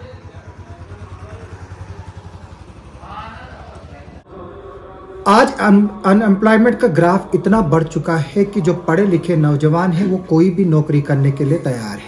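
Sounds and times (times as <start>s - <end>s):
engine idling: 0.0s - 12.0s
faint voices: 0.0s - 12.0s.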